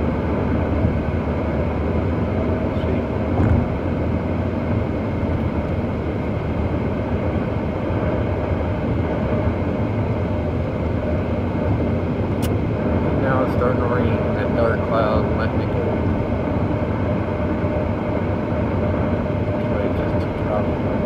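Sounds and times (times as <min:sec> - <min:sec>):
car road and engine noise: 0:00.0 - 0:21.0.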